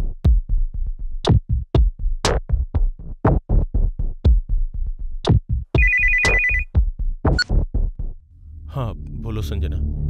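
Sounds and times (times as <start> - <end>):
electronic music with steady beat: 5.3 - 7.6
mobile phone ringing trill: 5.8 - 6.7.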